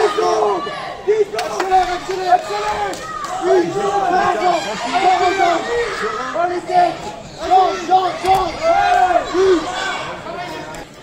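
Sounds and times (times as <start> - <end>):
spectators shouting encouragement: 0.0 - 10.9.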